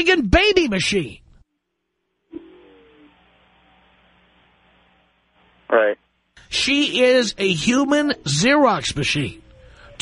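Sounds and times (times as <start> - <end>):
telephone line hiss and hum: 1.6 - 7.2.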